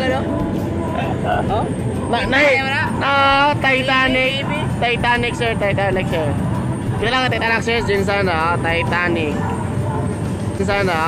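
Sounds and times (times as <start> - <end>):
people shouting and chanting: 0.0 - 6.1
motorboat rumble: 0.0 - 11.0.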